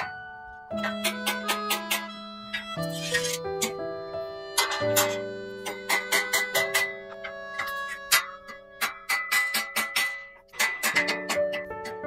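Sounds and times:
background music sustained notes: 0.0 - 12.0
rubber mallet tapping steel beam: 0.8 - 2.7, 4.6 - 12.0.

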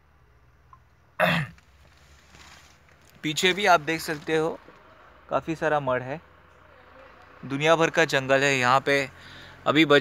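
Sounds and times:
faint background noise: 0.0 - 10.0
man clearing his throat: 1.2 - 1.6.

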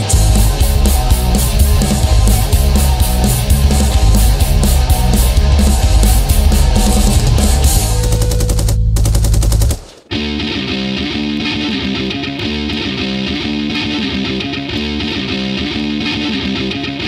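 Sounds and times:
electric guitar riff: 0.0 - 8.9, 10.1 - 17.0
punk rock song: 0.0 - 17.0.

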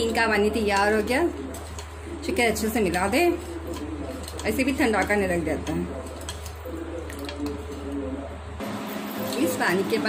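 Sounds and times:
spoon stirring water in bowl: 0.0 - 8.2.

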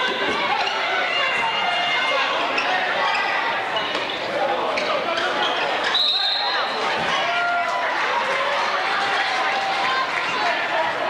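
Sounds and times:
players and spectators voices: 0.0 - 11.0.

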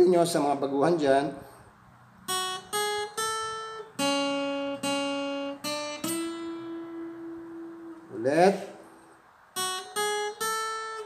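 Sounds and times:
acoustic guitar single-note melody: 2.0 - 11.0.

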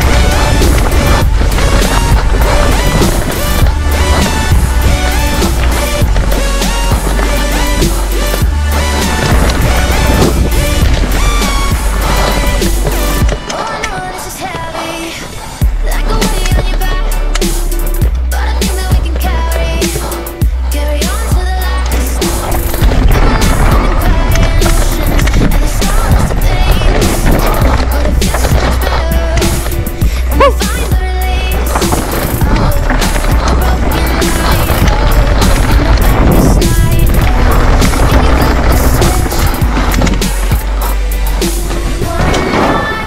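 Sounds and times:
music with heavy bass: 0.0 - 13.4, 15.6 - 43.0
bike tyres rattling over dirt: 0.0 - 43.0
bike knocking on rough ground: 22.3 - 43.0.

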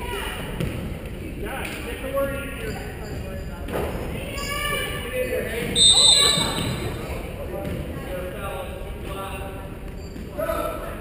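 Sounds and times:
voices in a gymnasium: 0.0 - 11.0
basketball bouncing: 0.6 - 0.9
referee's whistle blast: 5.8 - 6.9.

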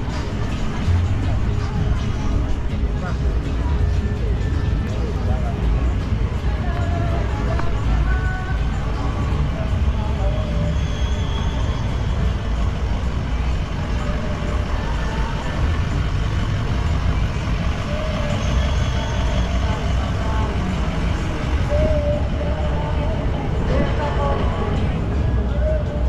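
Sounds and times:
car traffic rumbling and idling: 0.0 - 26.0
faint voices: 0.0 - 26.0.

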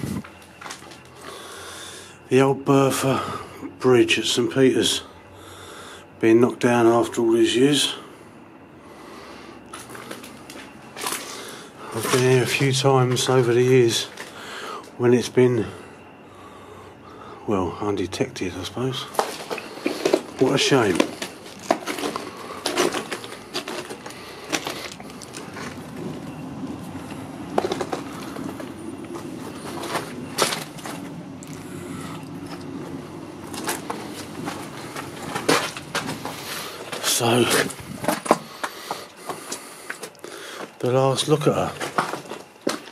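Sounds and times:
footsteps crunching on rubble: 0.0 - 1.2, 9.7 - 15.0, 19.0 - 42.9
steady low drone: 8.3 - 40.0
faint handling sounds: 19.1 - 40.8.

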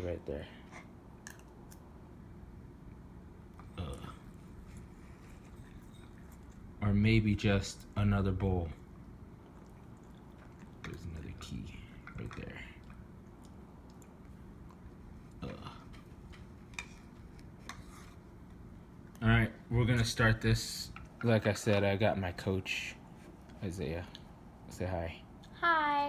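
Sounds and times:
low room noise: 0.0 - 26.0.

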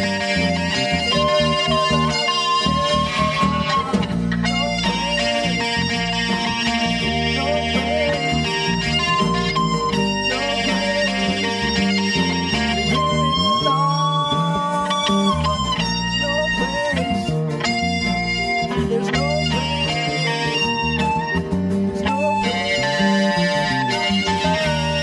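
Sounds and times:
guitars: 0.0 - 25.0
worship band playing: 0.0 - 25.0.

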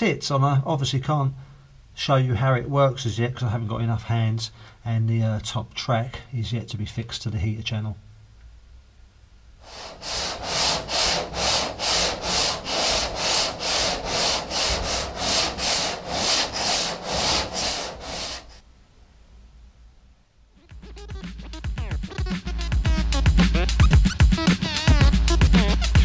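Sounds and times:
hand sanding car body panel: 9.6 - 18.6.

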